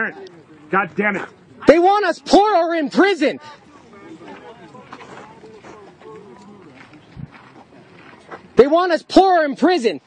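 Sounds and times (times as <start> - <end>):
distant people talking: 0.0 - 9.7.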